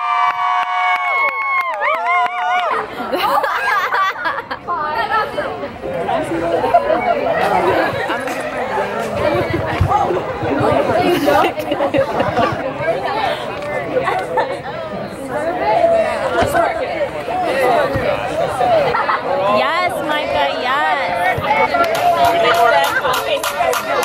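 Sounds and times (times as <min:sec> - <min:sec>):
group chatter: 0:00.0 - 0:24.0.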